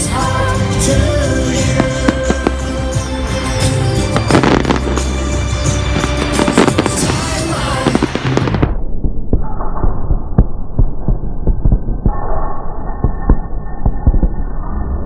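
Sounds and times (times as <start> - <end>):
music from loudspeakers: 0.0 - 8.6
fireworks bursting: 1.4 - 8.8.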